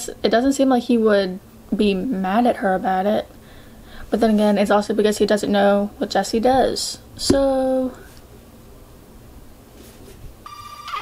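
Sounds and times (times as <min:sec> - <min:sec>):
telephone ringing: 0:10.5 - 0:11.0.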